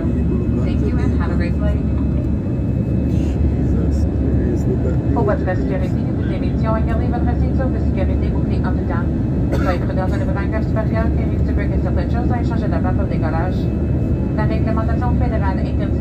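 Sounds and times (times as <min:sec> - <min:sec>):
jet cabin engine rumble: 0:00.0 - 0:16.0.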